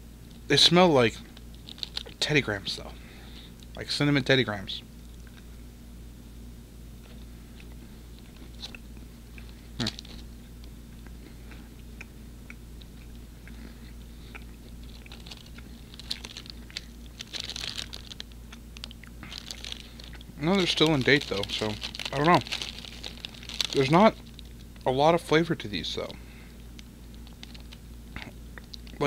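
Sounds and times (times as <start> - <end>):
plastic wrapper crinkling: 1.3 - 2.2, 9.8 - 10.3, 14.8 - 24.8, 26.7 - 27.8
quiet chewing: 7.0 - 24.8, 26.6 - 29.0.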